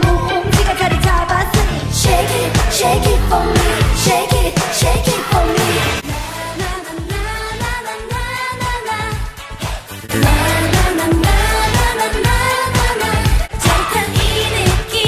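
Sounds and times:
girl group singing: 0.0 - 9.4, 10.1 - 15.0
dance-pop backing track: 0.0 - 15.0.

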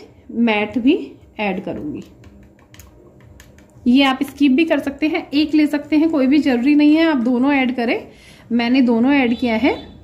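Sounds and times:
makeup tools tapping glass bowl: 1.7 - 4.6.

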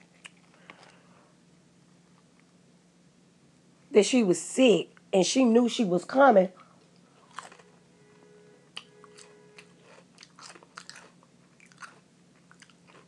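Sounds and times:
small clicks and crunching: 0.0 - 1.0, 6.8 - 7.7, 8.8 - 13.0
steady low hum: 0.0 - 13.0.

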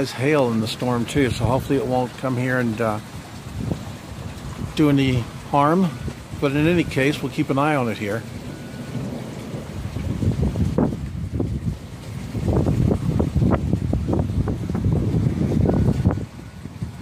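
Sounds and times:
thunder rumbling: 0.0 - 17.0.

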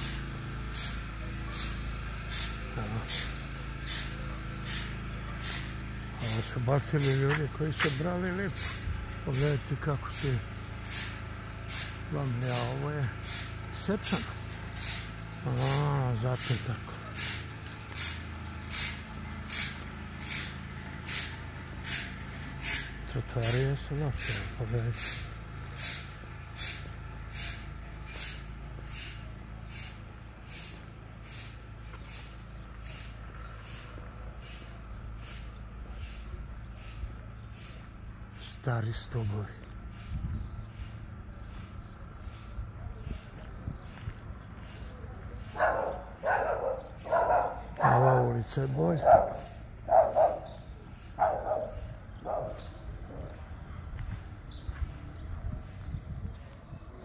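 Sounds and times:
steady low rumble: 0.0 - 57.0
footsteps on pavement: 4.0 - 9.3, 23.4 - 38.4, 39.0 - 52.6, 53.9 - 57.0
dog barking: 45.6 - 48.3, 49.0 - 50.6, 51.2 - 52.6.

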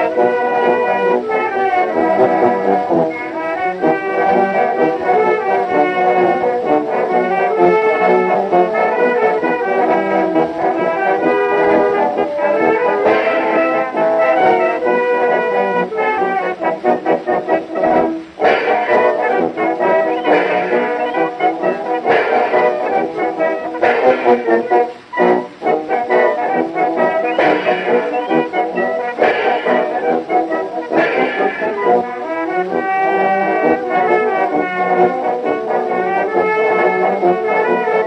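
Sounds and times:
brass band playing a march: 0.0 - 38.0.

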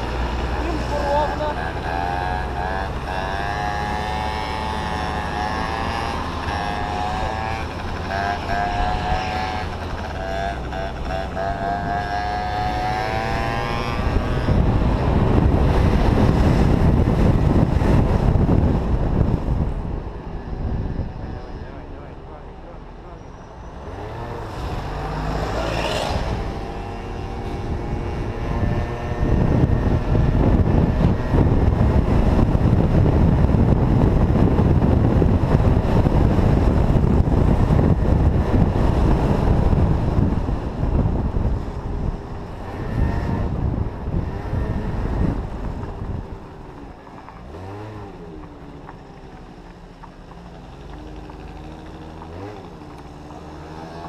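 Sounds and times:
scooter engine running: 0.0 - 19.7, 24.0 - 54.0
wind buffeting microphone: 0.0 - 22.0, 23.9 - 54.0.

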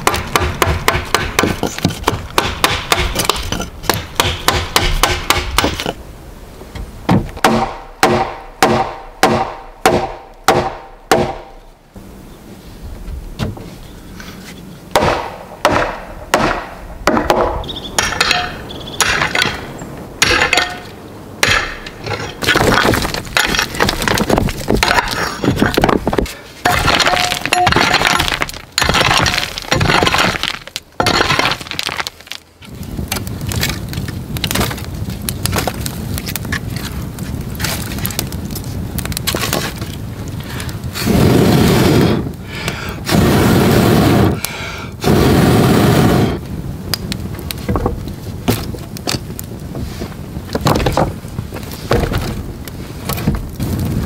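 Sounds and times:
digging tool striking stony ground: 0.0 - 6.0, 20.2 - 32.4
rustling scrape: 13.6 - 14.7, 49.8 - 50.2
rubble clinking and clattering: 20.3 - 32.5
wind on microphone: 32.6 - 54.0.

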